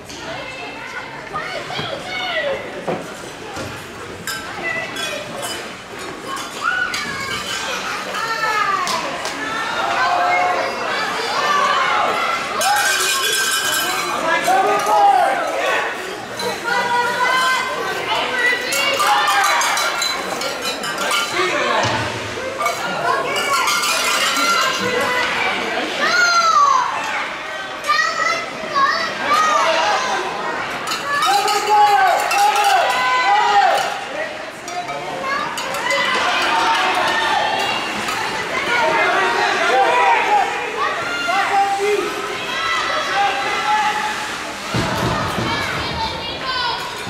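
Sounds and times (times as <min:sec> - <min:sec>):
children shouting: 0:06.3 - 0:20.1, 0:21.4 - 0:34.2, 0:35.2 - 0:47.0.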